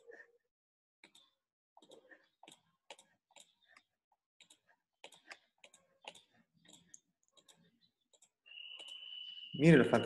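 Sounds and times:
faint computer clicking: 0:04.4 - 0:09.2.

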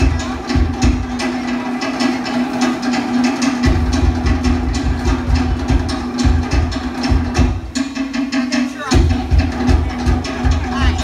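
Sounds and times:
deep bass drum: 0:00.0 - 0:11.0
wooden drum strikes: 0:00.0 - 0:11.0.

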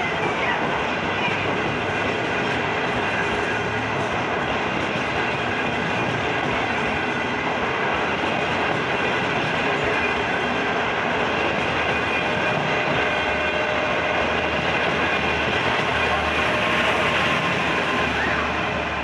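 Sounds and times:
train wheels rushing on rail: 0:00.0 - 0:19.0.

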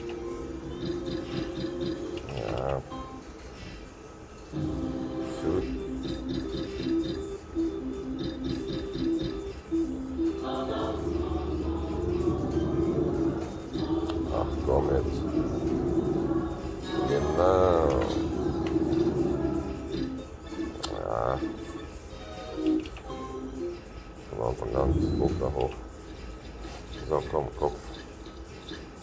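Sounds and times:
slot machine reel spin tone: 0:00.0 - 0:03.2, 0:04.6 - 0:29.0
warbling melodic jingles: 0:12.8 - 0:29.0.

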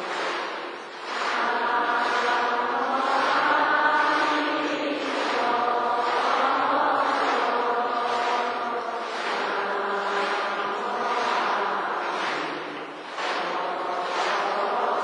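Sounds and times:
congregation chanting in unison: 0:00.0 - 0:15.0.

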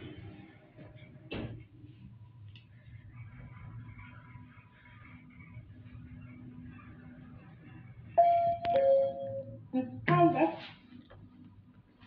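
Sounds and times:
elevator two-tone arrival chime: 0:08.2 - 0:09.6.

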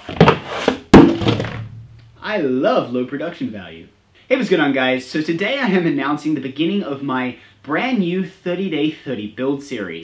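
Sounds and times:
loud thunk: 0:00.1 - 0:02.0
sharp knocks: 0:00.2 - 0:02.2.

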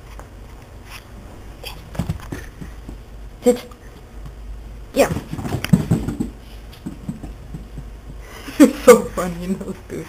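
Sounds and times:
dog paws thumping on carpet: 0:01.9 - 0:03.1, 0:05.0 - 0:08.4.

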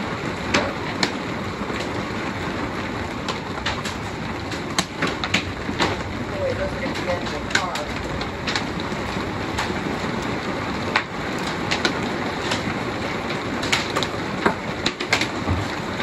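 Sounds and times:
rain and wind roar: 0:00.0 - 0:16.0
sharp taps and cracks: 0:03.2 - 0:09.8, 0:10.9 - 0:16.0.

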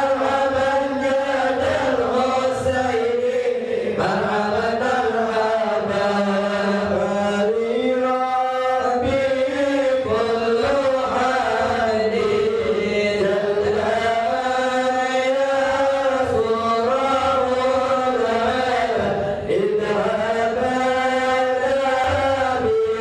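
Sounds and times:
men chanting a devotional hymn: 0:00.0 - 0:23.0.

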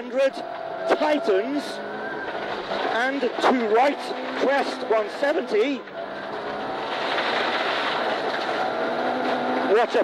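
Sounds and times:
rally car engine pulling hard: 0:00.0 - 0:10.0
gravel rushing under car: 0:00.2 - 0:10.0.

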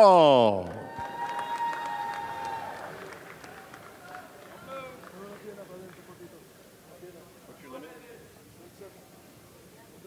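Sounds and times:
faint crowd: 0:00.0 - 0:10.0.

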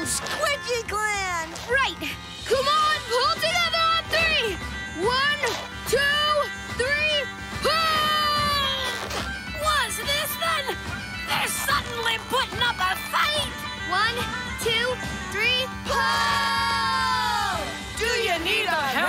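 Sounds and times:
background music with drone: 0:00.0 - 0:19.0.

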